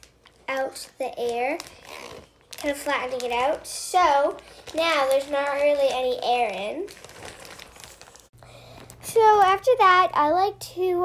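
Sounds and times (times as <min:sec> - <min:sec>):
plastic bag crinkling: 0:00.0 - 0:09.6.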